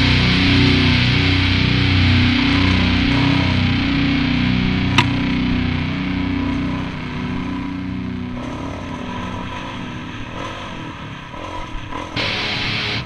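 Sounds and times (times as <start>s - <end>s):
rock music: 0.0s - 11.0s, 12.1s - 13.0s
dirt bike engine revving: 0.0s - 13.0s.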